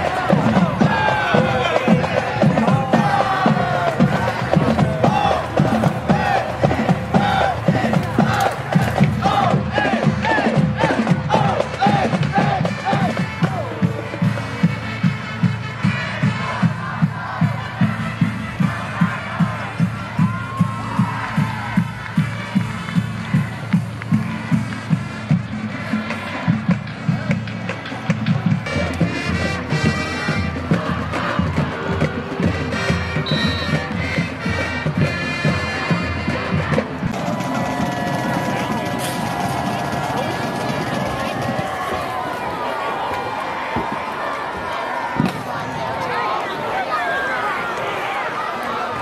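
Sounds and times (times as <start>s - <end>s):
brass notes: 0.0s - 20.3s, 21.1s - 26.6s, 28.5s - 43.7s
marching band drumbeat: 0.0s - 42.6s
crowd noise: 0.0s - 49.0s.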